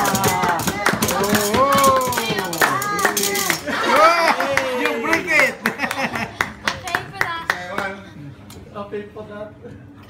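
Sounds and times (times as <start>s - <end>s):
people laughing and cheering: 0.0s - 8.0s
rhythmic hand clapping: 0.0s - 8.0s.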